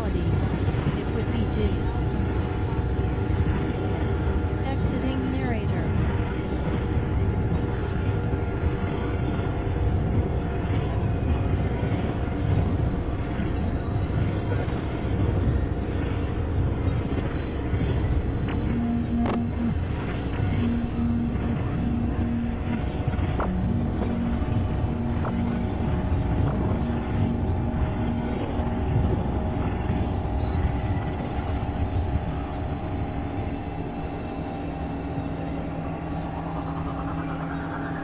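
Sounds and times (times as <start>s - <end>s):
drone tones: 0.0s - 38.0s
layered experimental noise music: 0.0s - 38.0s.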